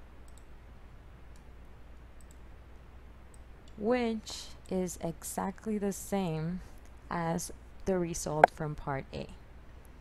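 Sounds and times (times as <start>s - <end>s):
room noise hum and hiss: 0.0s - 10.0s
sharp computer clicks: 0.2s - 0.6s, 2.2s - 2.5s.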